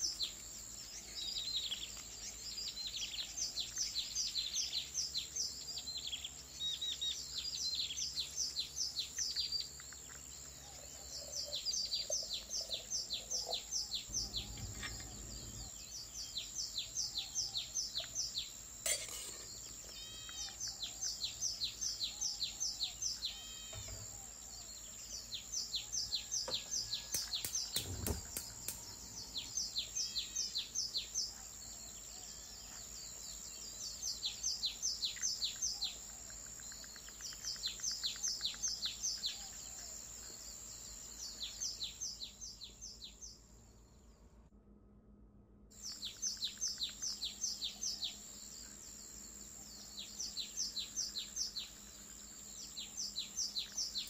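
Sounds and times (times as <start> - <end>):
birds chirping: 0.0 - 43.6, 45.8 - 54.0
thump: 27.8 - 28.5.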